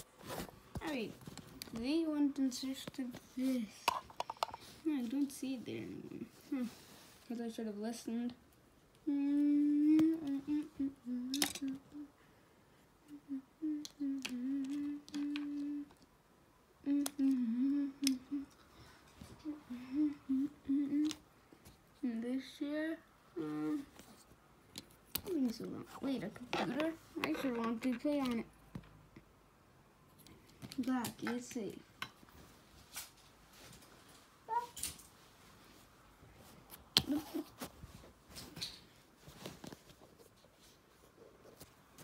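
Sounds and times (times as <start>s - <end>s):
person humming: 9.0s - 12.2s, 13.0s - 16.0s, 16.8s - 18.6s, 19.3s - 21.2s.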